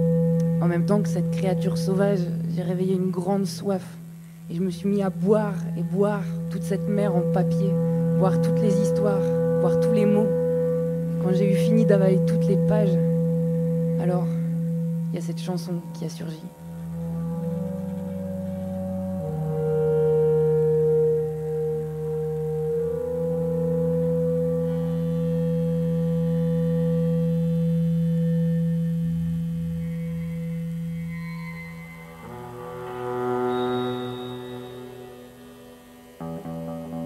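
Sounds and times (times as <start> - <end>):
slow folk instrumental drones: 0.0 - 37.0.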